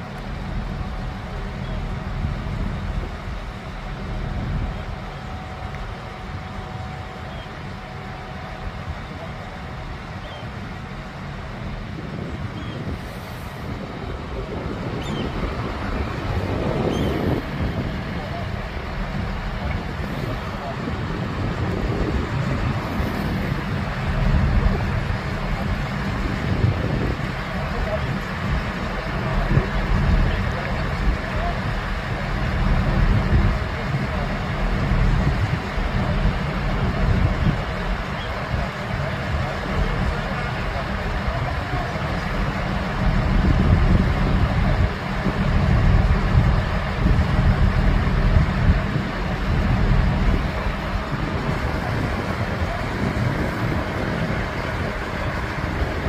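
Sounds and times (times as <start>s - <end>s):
heavy construction machinery rumbling: 0.0s - 56.0s
wind buffeting microphone: 0.0s - 56.0s.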